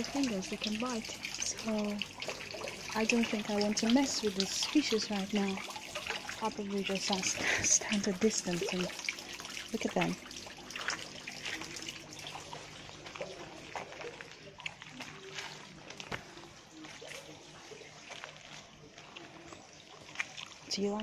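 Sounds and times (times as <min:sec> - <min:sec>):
water trickling into pond: 0:00.0 - 0:21.0.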